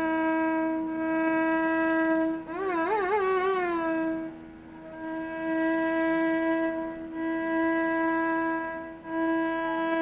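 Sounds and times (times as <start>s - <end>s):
bamboo flute long note: 0.0s - 10.0s.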